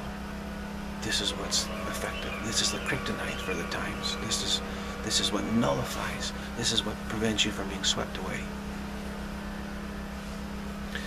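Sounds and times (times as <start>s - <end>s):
low mechanical hum with throb: 0.0s - 11.0s.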